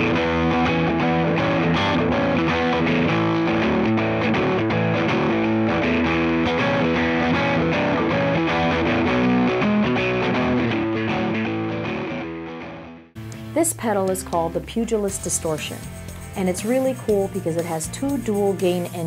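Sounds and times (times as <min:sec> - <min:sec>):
distorted electric guitar riff: 0:00.0 - 0:16.4.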